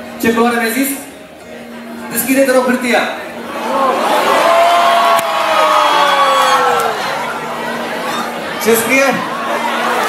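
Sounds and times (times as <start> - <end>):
crowd cheering and whooping: 3.5 - 10.0
long falling shout: 3.6 - 7.3.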